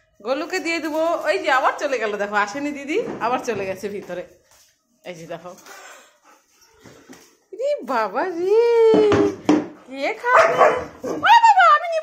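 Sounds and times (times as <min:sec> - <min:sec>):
dog barking and yowling: 0:10.2 - 0:11.5.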